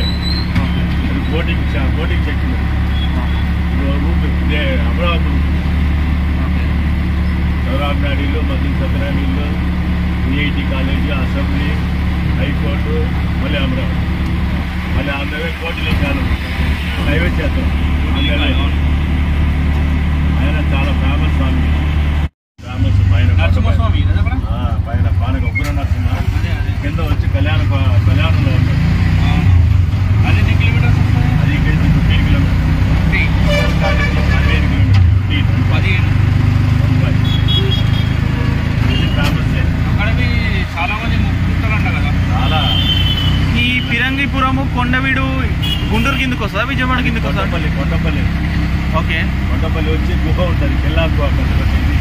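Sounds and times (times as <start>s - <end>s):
auto-rickshaw engine running: 0.0s - 52.0s
vehicle horns: 2.8s - 3.6s, 33.3s - 35.0s, 37.0s - 39.8s, 42.3s - 44.2s, 45.5s - 46.5s.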